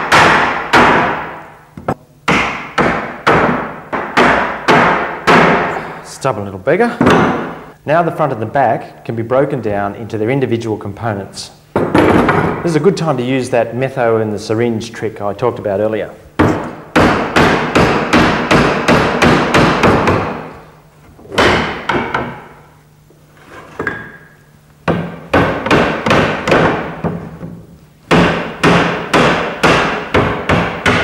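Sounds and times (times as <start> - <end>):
wooden mallet striking chair: 0.0 - 5.8, 7.0 - 7.6, 21.3 - 22.6, 23.7 - 31.0.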